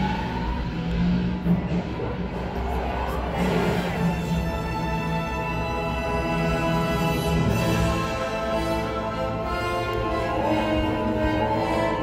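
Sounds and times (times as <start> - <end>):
orchestral music over speakers: 0.0 - 12.0.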